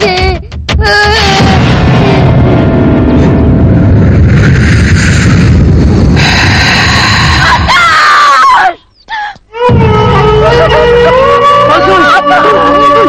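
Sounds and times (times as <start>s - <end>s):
dramatic film soundtrack: 0.0s - 8.4s, 9.5s - 13.0s.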